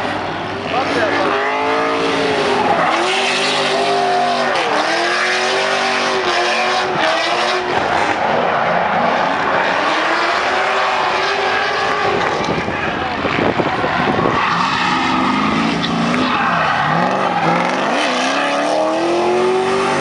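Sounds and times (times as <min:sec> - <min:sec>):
car engine revving hard: 0:00.0 - 0:20.0.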